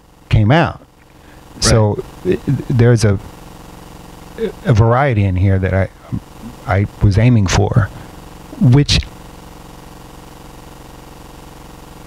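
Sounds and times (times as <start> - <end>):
even hiss: 0.0 - 12.0
steady buzzing hum: 0.0 - 12.0.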